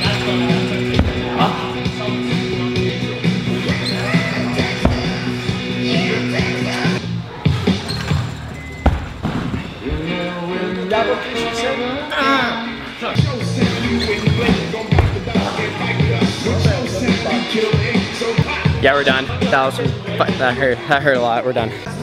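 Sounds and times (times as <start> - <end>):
background music: 0.0 - 22.0
dull thuds on a mat: 1.0 - 1.4, 4.8 - 5.3, 8.8 - 9.6, 14.4 - 15.4.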